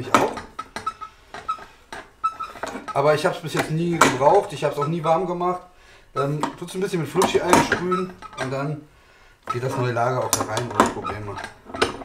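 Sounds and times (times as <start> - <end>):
short high squeaks: 0.0 - 6.4, 7.4 - 8.7.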